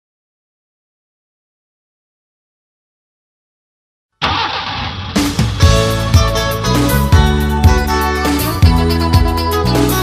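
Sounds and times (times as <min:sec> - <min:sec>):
car engine starting: 0:04.2 - 0:07.0.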